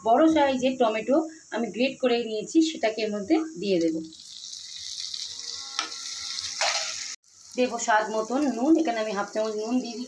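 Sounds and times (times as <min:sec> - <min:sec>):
tomato sizzling in hot oil: 0:01.6 - 0:10.0.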